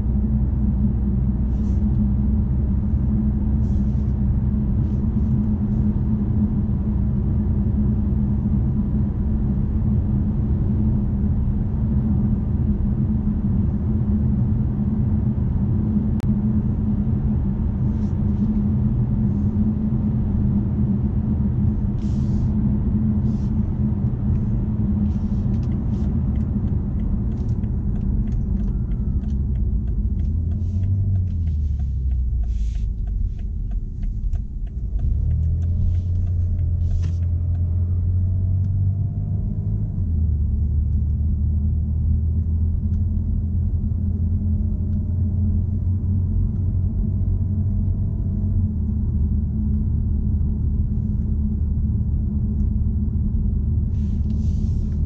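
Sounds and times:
car engine and tyre drone: 0:00.0 - 0:55.0.

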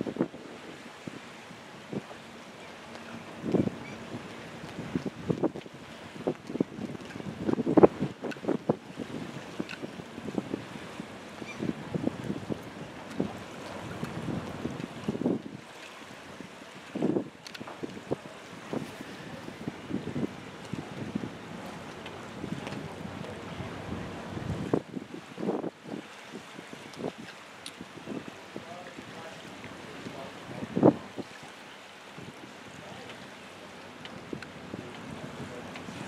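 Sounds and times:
wind buffeting microphone: 0:00.0 - 0:02.2, 0:03.2 - 0:31.4, 0:34.0 - 0:36.0.

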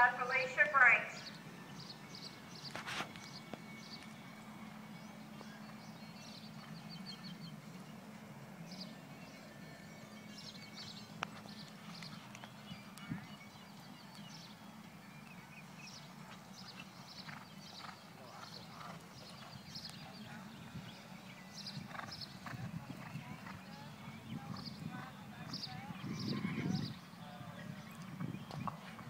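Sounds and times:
horse hoofbeats galloping on dirt: 0:02.6 - 0:14.5, 0:15.2 - 0:27.0, 0:27.7 - 0:29.0.

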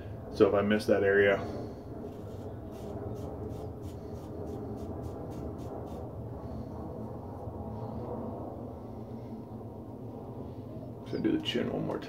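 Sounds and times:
steady low hum: 0:00.0 - 0:12.0
fingertips rubbing stubbly skin: 0:02.1 - 0:06.1.

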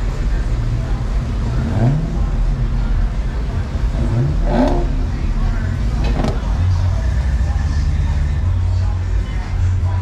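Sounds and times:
background voices: 0:00.0 - 0:10.0
car engine revving: 0:00.0 - 0:10.0
steady low rumble: 0:00.0 - 0:10.0.

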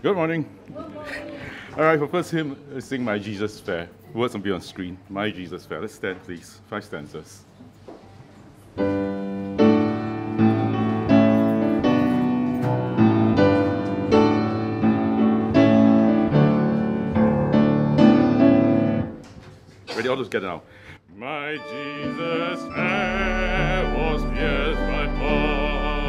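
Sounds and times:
piano sustained chords: 0:09.2 - 0:19.1, 0:21.4 - 0:26.0.

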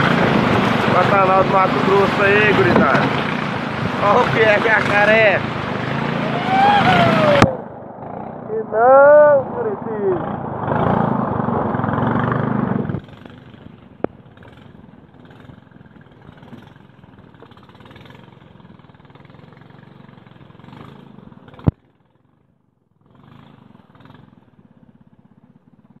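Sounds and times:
boat motor running: 0:00.0 - 0:18.1.

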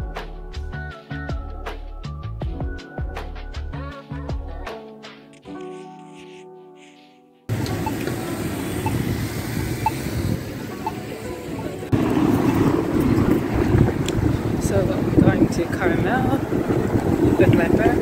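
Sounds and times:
background music: 0:00.0 - 0:08.5
wind buffeting microphone: 0:07.5 - 0:11.0, 0:11.6 - 0:18.0
traffic: 0:07.5 - 0:18.0.

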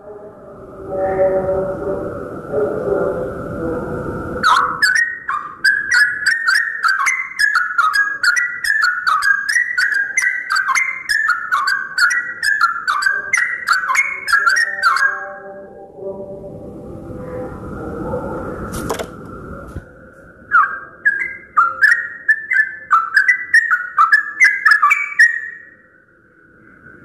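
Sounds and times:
bird singing bubbly whistled notes: 0:04.4 - 0:15.3, 0:20.4 - 0:25.9.

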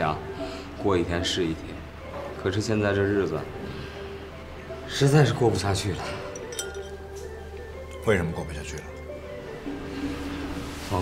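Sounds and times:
soft background music: 0:00.0 - 0:11.0
faint light clinks: 0:06.2 - 0:07.4.

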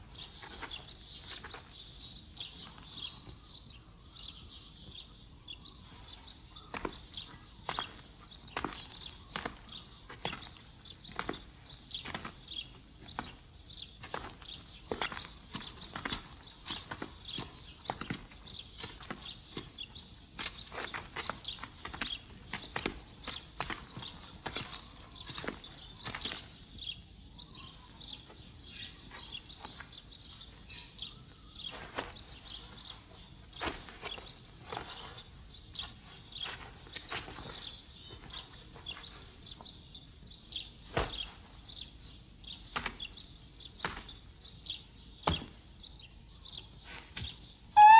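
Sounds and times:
faint steady background noise: 0:00.0 - 0:47.9.

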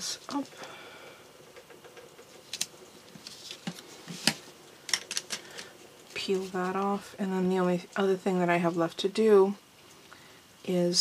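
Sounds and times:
paper rustling: 0:02.5 - 0:04.4.

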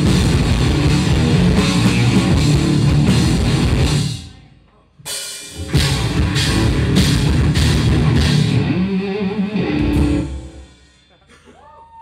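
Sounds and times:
live rock band playing: 0:00.0 - 0:04.3, 0:05.1 - 0:11.0.

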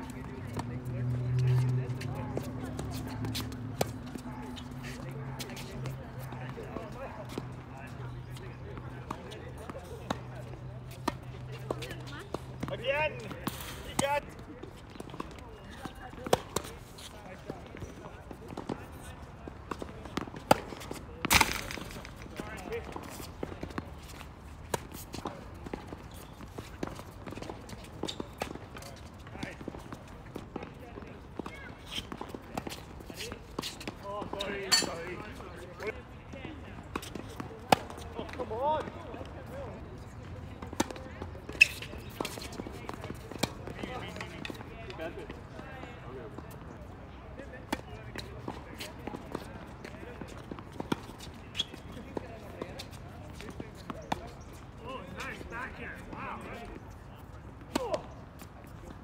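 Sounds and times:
tennis balls bouncing on court: 0:00.0 - 0:47.0, 0:47.6 - 0:59.0
tennis balls struck by rackets: 0:00.2 - 0:07.5, 0:19.5 - 0:30.8, 0:36.8 - 0:38.9.

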